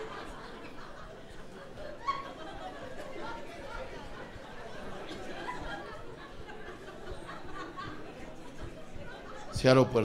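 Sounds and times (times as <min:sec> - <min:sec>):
audience chatter: 0:00.0 - 0:10.0
comedian speaking: 0:09.5 - 0:10.0.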